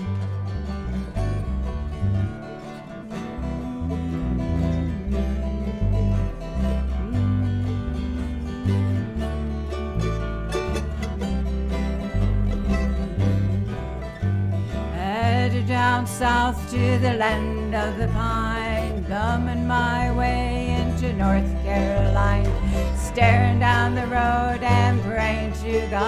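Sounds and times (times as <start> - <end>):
mandolin: 0.0 - 26.0
plucked bass line: 0.0 - 26.0
strummed acoustic guitars: 0.0 - 26.0.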